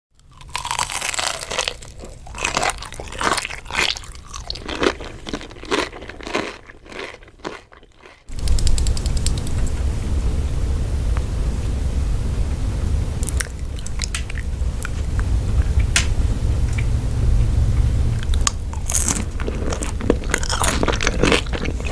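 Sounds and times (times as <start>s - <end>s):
crunchy chewing of food: 0.2s - 9.2s, 13.2s - 15.9s, 18.2s - 21.9s
light clicks: 8.3s - 9.8s
steady low rumble: 8.3s - 21.9s.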